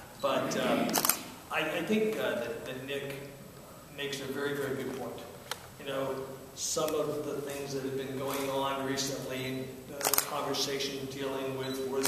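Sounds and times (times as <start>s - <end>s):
man speaking: 0.2s - 12.0s
camera shutter double click: 0.9s - 1.3s, 10.0s - 10.3s.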